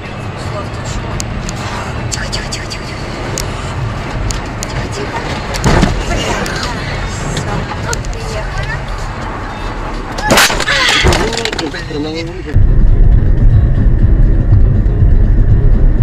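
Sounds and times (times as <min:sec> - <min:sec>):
car interior road rumble: 0:00.0 - 0:16.0.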